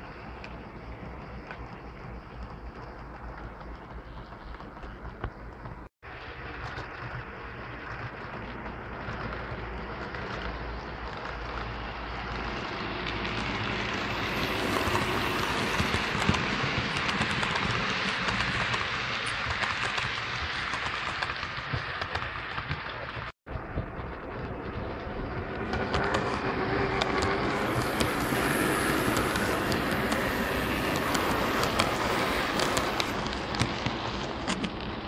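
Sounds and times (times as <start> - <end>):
model train rolling: 0.0 - 22.7, 23.6 - 35.0
wheels clicking on rail: 0.0 - 35.0.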